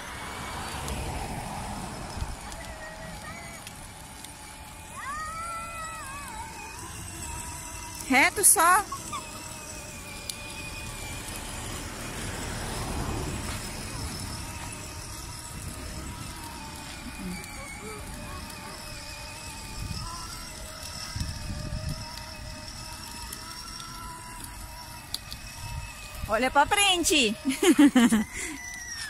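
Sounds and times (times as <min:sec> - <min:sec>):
electric motor and gear whine: 0:00.0 - 0:29.0
plastic wheels rumbling on asphalt: 0:00.0 - 0:29.0.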